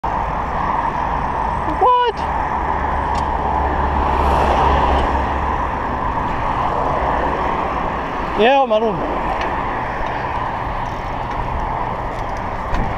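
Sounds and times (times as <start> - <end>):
motor traffic: 0.0 - 12.9
wind and road noise: 0.0 - 12.9.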